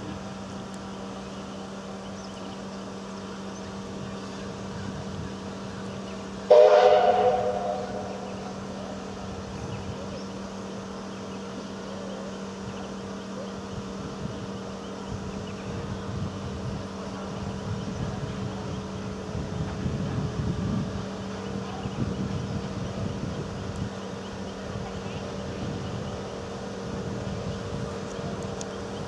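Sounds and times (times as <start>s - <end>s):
low hum of boat underway: 0.0s - 29.0s
multi-tone steam whistle blast: 6.5s - 8.2s.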